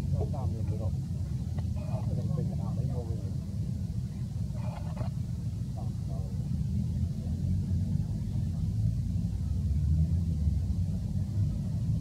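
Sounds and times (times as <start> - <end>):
faint distant voices: 0.0 - 12.0
steady low rumble: 0.0 - 12.0.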